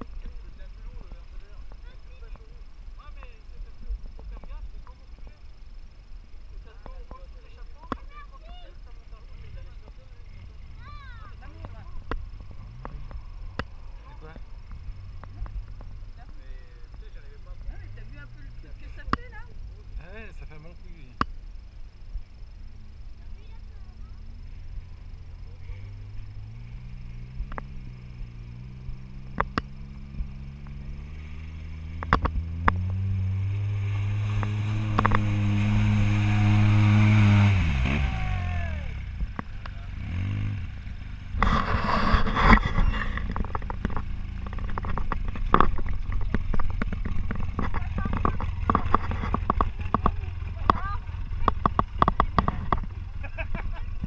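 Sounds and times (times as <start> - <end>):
off-road vehicle engine revving: 0.0 - 54.0.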